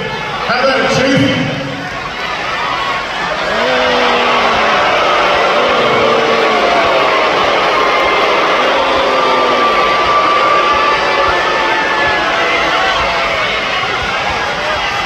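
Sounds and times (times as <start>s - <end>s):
arena crowd noise: 0.0s - 15.0s
crowd chanting or jeering: 0.0s - 15.0s.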